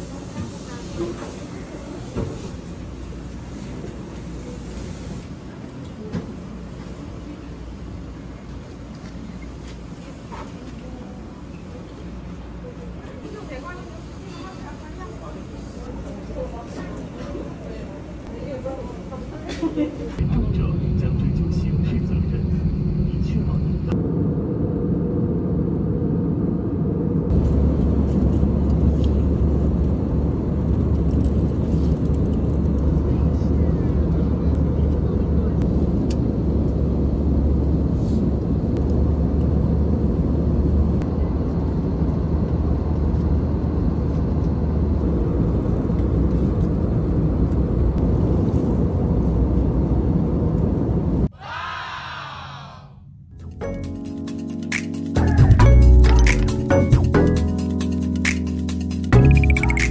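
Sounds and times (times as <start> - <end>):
airliner cabin engine noise: 0.0 - 51.3.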